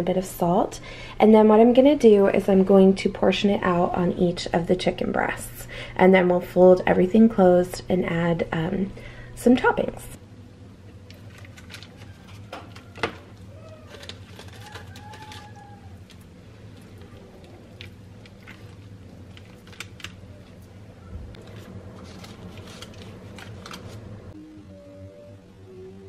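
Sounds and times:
faint steady low hum: 0.0s - 26.0s.

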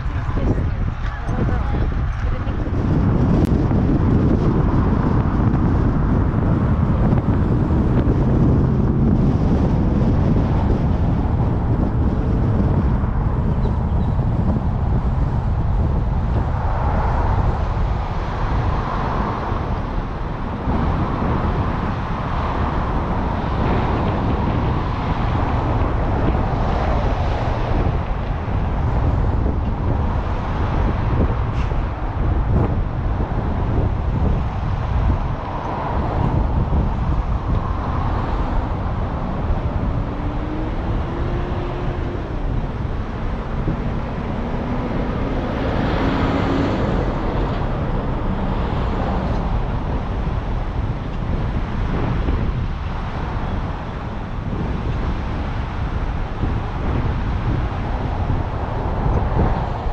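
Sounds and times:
tyre and traffic noise: 0.0s - 59.9s
wind buffeting microphone: 0.0s - 59.9s.

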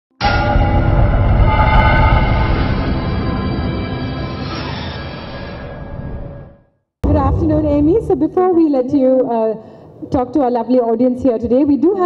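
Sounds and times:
deep rumble: 0.2s - 4.2s, 7.0s - 8.3s
sustained synth chord: 0.2s - 4.5s.

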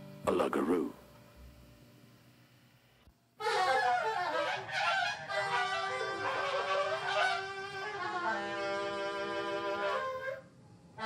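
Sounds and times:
saxophone and bass clarinet squealing: 3.4s - 11.0s.

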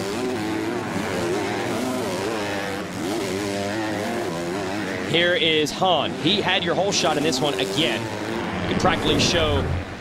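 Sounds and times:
motocross bike engines revving: 0.0s - 10.0s.

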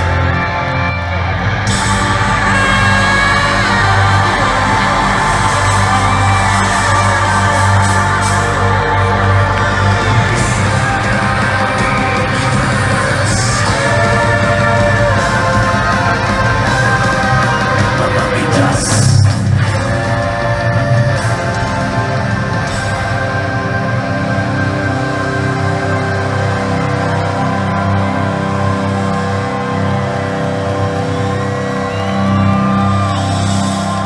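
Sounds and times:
saxophone-like lead lines: 0.0s - 18.3s
fans yelling and whooping: 0.0s - 34.0s
heavy metal band playing live: 0.0s - 34.0s.

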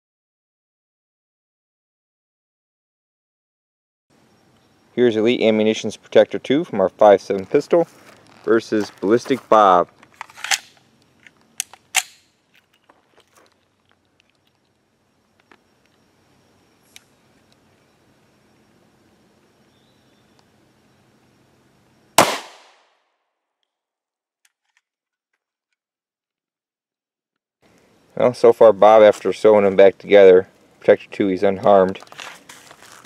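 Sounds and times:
pistol shot: 22.2s - 22.9s.

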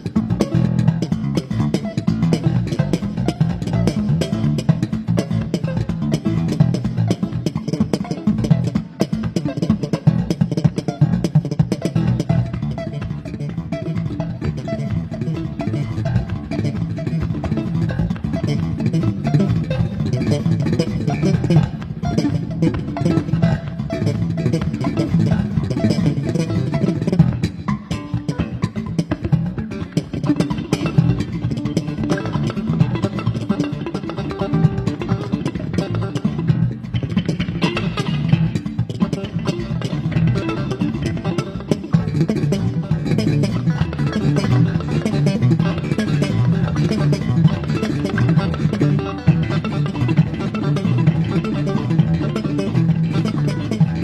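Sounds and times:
drums: 0.0s - 54.0s
electric bass: 0.0s - 54.0s
electric guitar: 0.0s - 54.0s.

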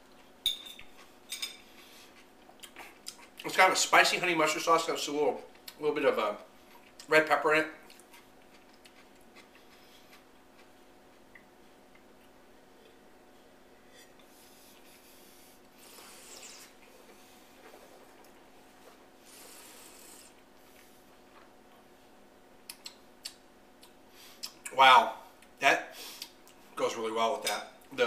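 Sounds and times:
faint steady hum: 0.0s - 28.0s.

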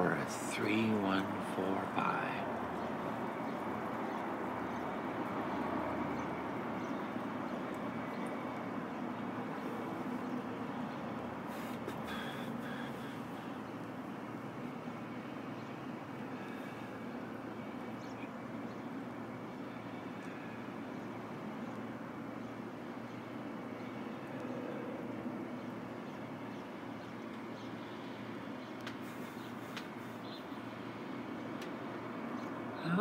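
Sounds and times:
distant traffic hum: 0.0s - 33.0s.

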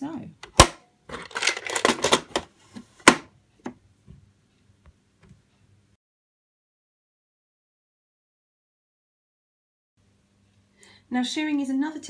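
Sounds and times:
sharp plastic snap: 0.4s - 0.8s, 3.1s - 3.3s
plastic parts clicking and clattering: 0.4s - 2.5s.

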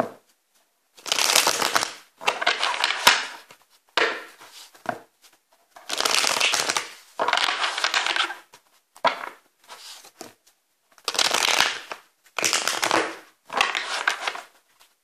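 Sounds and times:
cards being shuffled: 1.0s - 4.9s, 5.8s - 8.6s, 11.0s - 14.9s.

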